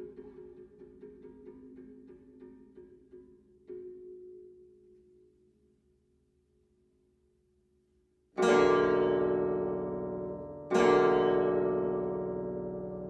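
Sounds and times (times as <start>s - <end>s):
plucked zither chords: 8.4s - 13.0s.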